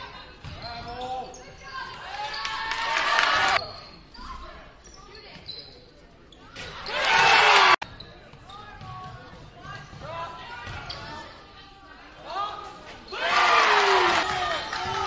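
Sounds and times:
crowd cheering: 2.1 - 3.6, 6.9 - 7.8, 13.1 - 15.0
players and spectators calling out: 6.7 - 7.9, 8.5 - 15.0.

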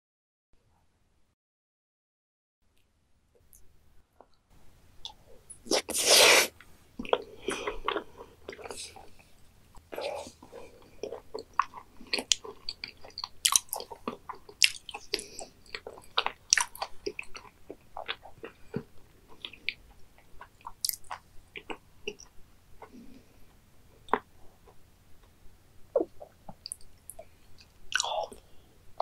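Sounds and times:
food going into mouth: 5.6 - 8.9
wet chewing clicks and smacks: 9.8 - 22.9.

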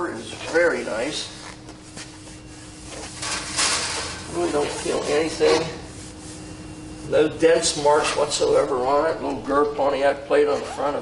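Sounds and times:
hand rubbing on metal bumper: 4.2 - 6.6.

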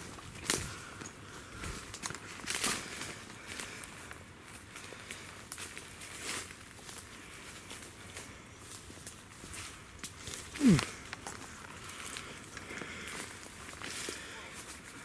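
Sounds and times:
footsteps crunching through dry leaves: 0.0 - 15.0.

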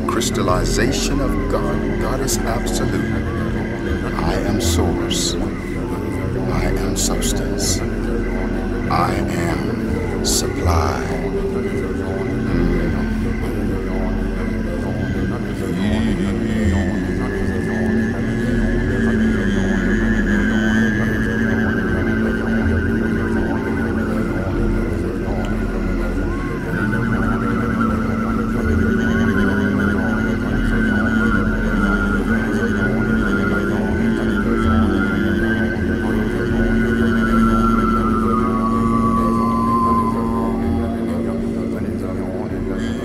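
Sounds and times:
didgeridoo drone: 0.0 - 43.0
high thin wavering overtone: 0.0 - 43.0.

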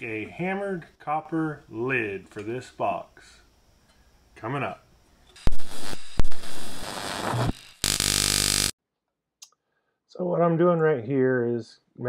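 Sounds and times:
loud buzzing burst: 5.4 - 8.7.

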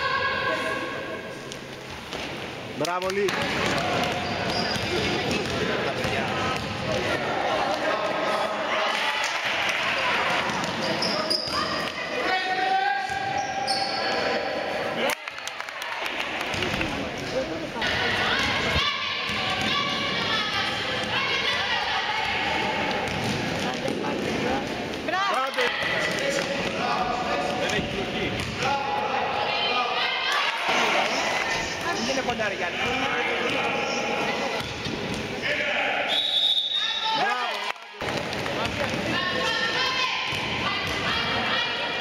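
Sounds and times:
players and spectators shouting: 17.8 - 23.0, 35.4 - 37.7, 39.1 - 42.0.

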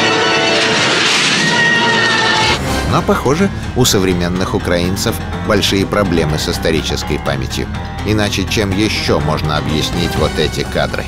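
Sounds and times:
droning music: 0.0 - 11.0
high wailing cries: 1.3 - 2.5.

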